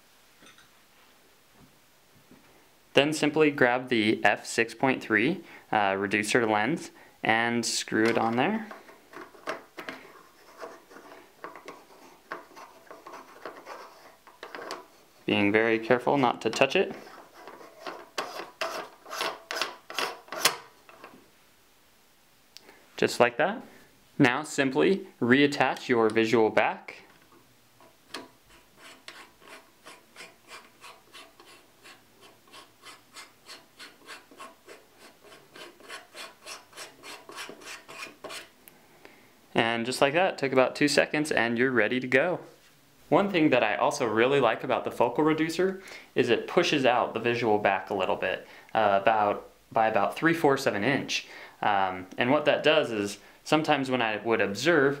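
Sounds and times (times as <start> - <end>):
faint scratching and ticks of threads: 8.1 - 15.3.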